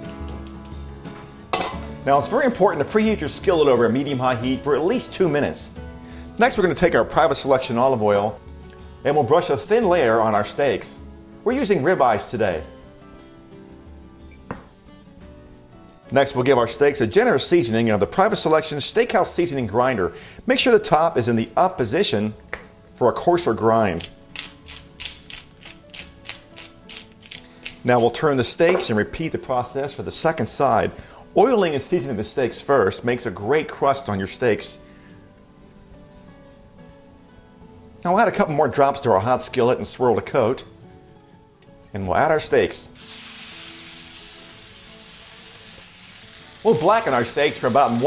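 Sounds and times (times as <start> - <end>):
soft music of held tones: 0.0 - 48.0
spice grinder clicking: 24.0 - 27.8
steaks sizzling in a skillet: 43.0 - 48.0.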